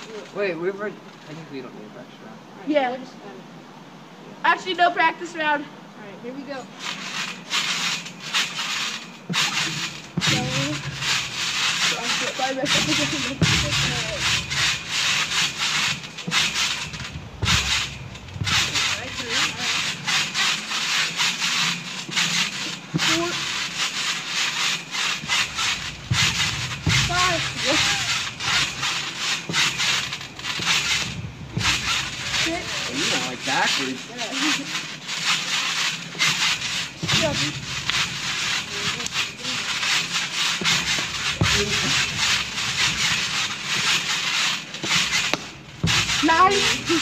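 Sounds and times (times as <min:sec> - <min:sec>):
trampoline springs creaking: 0:00.0 - 0:47.0.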